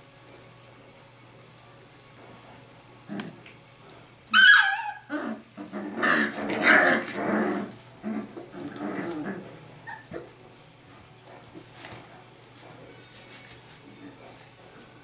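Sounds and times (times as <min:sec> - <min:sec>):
puppies growling and barking: 0:03.0 - 0:13.2
puppy yelping: 0:04.3 - 0:07.6, 0:08.2 - 0:10.3.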